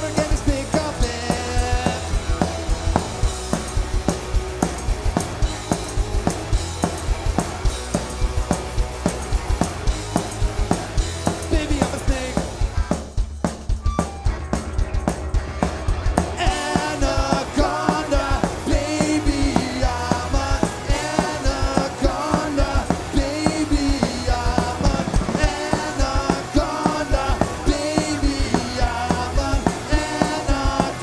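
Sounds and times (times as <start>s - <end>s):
person singing: 0.0s - 2.4s, 11.2s - 12.6s, 16.4s - 31.0s
drums: 0.0s - 31.0s
electric guitars: 0.0s - 31.0s.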